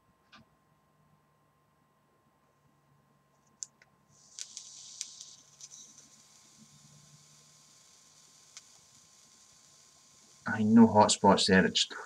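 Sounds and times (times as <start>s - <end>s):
coil hissing and crackling: 3.5s - 12.0s.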